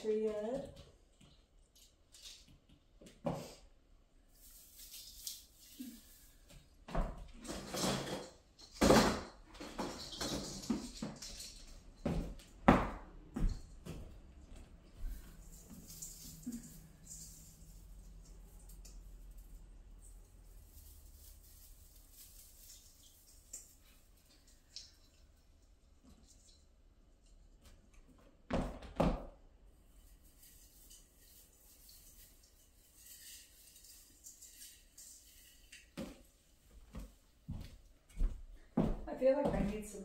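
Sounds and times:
ornaments rustling: 0:04.2 - 0:07.8, 0:13.6 - 0:25.4, 0:29.8 - 0:38.7.

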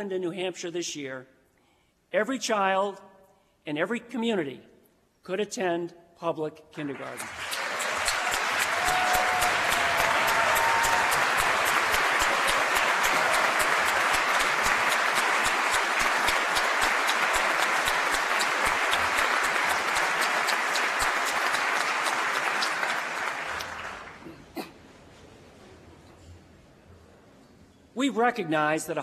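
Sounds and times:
audience applause: 0:06.9 - 0:24.2.

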